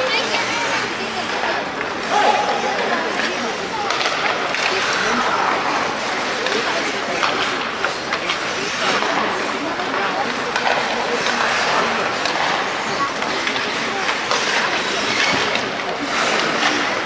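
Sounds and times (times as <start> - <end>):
hockey sticks and puck clacking: 0.0 - 17.0
skate blades scraping on ice: 0.0 - 17.0
players shouting: 1.9 - 4.2.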